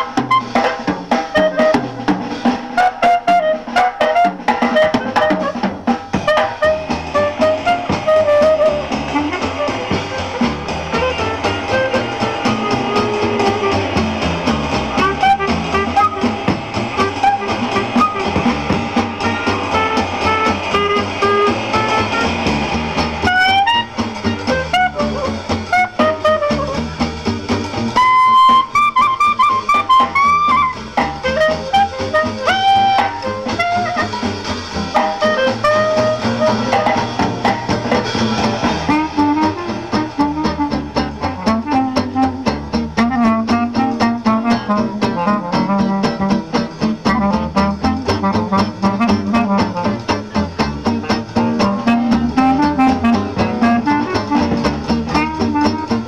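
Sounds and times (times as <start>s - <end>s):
clarinet melody: 0.0s - 56.0s
drum kit: 0.0s - 56.0s
jazz guitar: 0.0s - 56.0s
upright bass: 0.0s - 56.0s.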